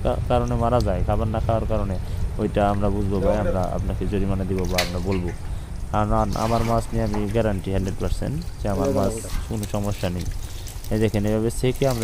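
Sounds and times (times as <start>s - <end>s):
man speaking: 0.0s - 10.3s
water pouring and trickling: 0.0s - 12.0s.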